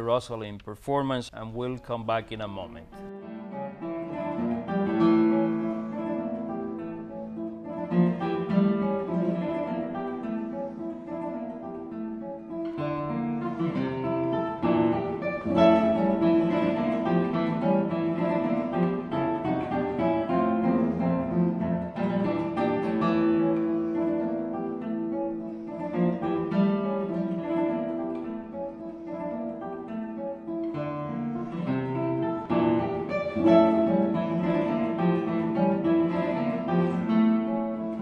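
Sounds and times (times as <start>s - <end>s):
classical guitar fingerstyle: 1.6s - 38.0s.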